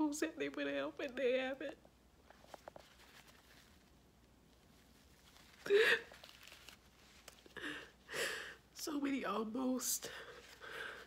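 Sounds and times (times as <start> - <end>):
woman sobbing: 5.6 - 6.3.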